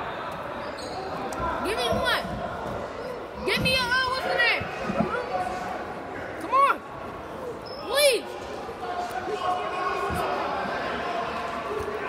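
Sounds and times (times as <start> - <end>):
hum of chatter: 0.0 - 12.0
sneaker squeaking on gym floor: 0.5 - 2.4, 7.5 - 8.0.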